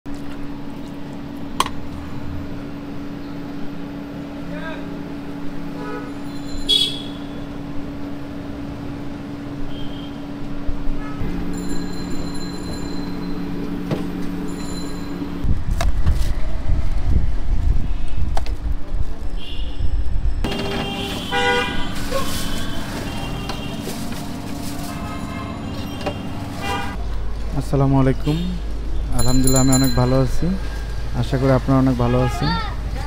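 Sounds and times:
passing traffic: 1.6 - 33.0.

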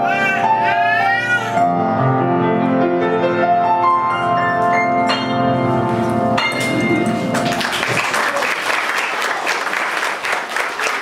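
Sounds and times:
upright piano chords: 0.0 - 8.2
audience applauding: 6.8 - 11.0.

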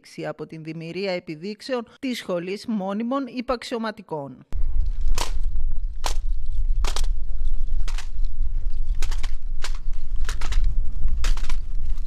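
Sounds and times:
steady low rumble: 4.6 - 12.0
rifles clacking in unison: 8.9 - 12.0.

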